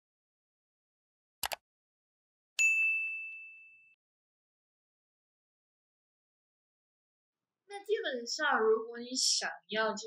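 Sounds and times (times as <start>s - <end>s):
notification bell ding: 2.6s - 4.0s.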